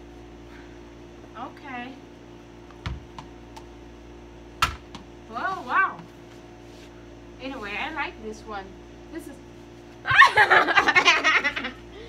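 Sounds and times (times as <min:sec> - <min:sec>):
person laughing: 0:10.1 - 0:12.0.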